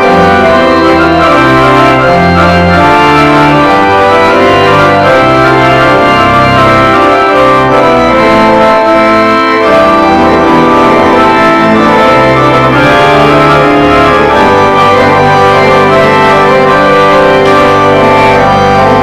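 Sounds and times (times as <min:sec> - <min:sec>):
church organ chords: 0:00.0 - 0:19.0.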